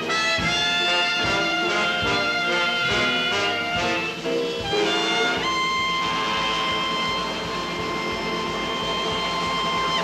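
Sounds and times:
jazz band holding final note: 0.0 - 10.0.

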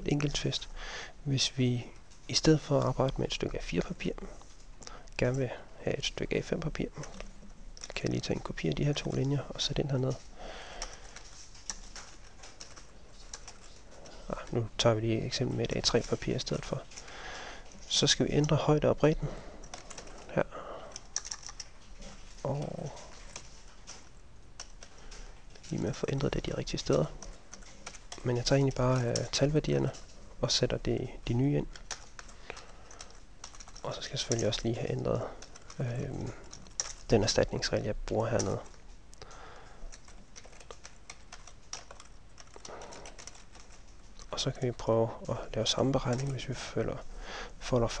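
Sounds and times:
computer keyboard clicks: 10.2 - 14.4, 19.6 - 30.2, 31.6 - 37.3, 38.1 - 44.8.

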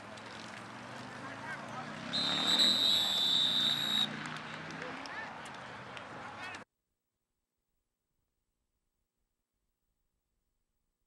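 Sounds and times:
referee's whistle blast: 2.1 - 4.1.

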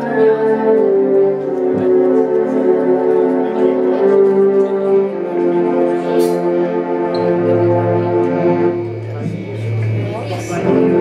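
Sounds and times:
live band sustained chords: 0.0 - 11.0.

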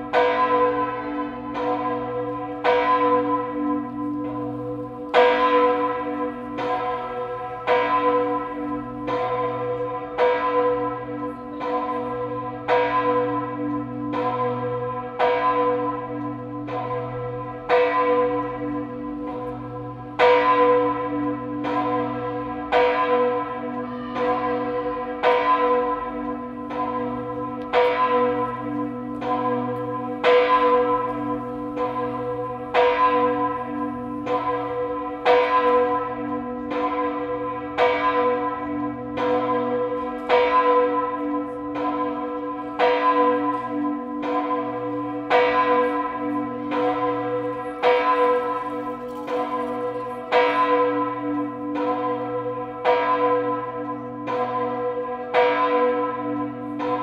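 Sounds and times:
church bell ringing: 0.0 - 57.0.

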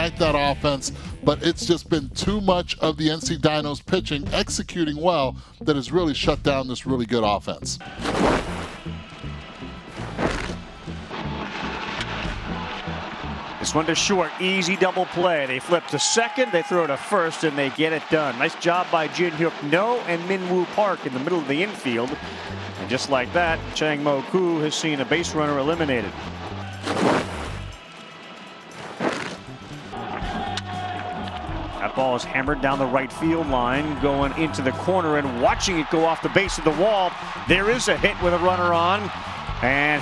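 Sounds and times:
background music with low beat: 0.0 - 14.1, 25.0 - 40.0.

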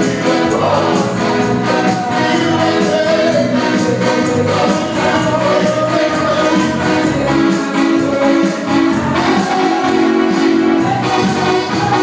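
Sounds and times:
choir singing gospel over pa: 0.0 - 12.0
tambourine jingling: 0.0 - 12.0.

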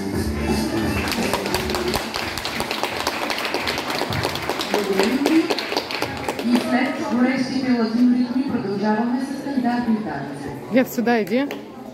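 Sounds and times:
dance music: 0.0 - 2.4
audience applauding: 0.4 - 6.7.

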